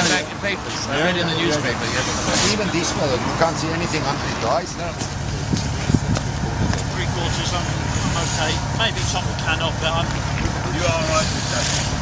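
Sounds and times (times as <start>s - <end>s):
car engine idling: 0.0s - 12.0s.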